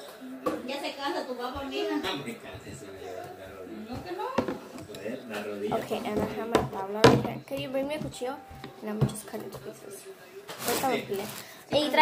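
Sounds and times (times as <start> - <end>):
voices talking: 0.7 - 12.0.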